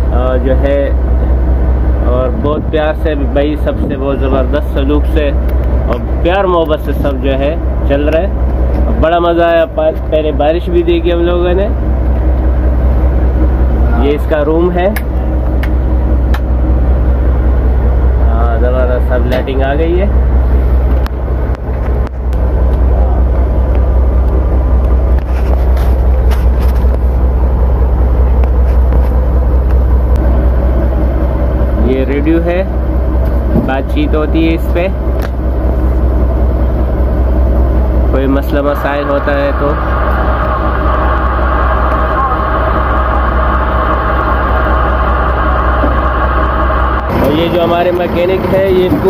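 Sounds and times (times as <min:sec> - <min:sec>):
boat engine droning: 0:00.0 - 0:49.0.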